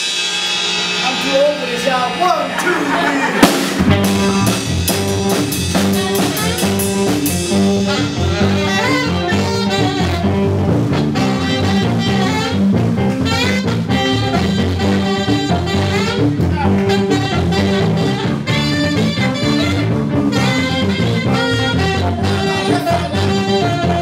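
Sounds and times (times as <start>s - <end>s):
live blues band playing: 0.0s - 24.0s.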